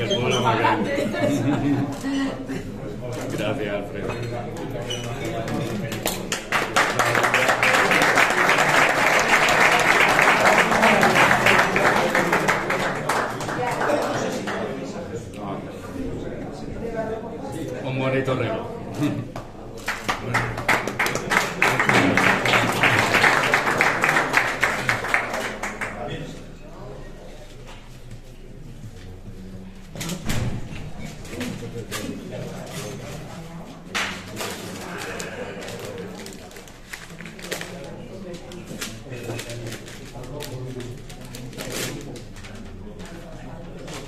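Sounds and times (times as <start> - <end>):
murmur of voices: 0.0 - 44.0
people applauding: 5.4 - 14.9, 19.8 - 26.4.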